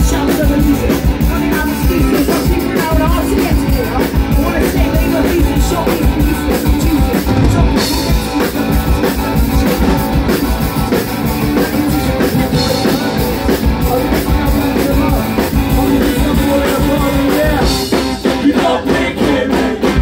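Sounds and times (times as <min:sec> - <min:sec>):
bass guitar: 0:00.0 - 0:20.0
drum kit beat: 0:00.0 - 0:20.0
electric guitars: 0:00.0 - 0:20.0.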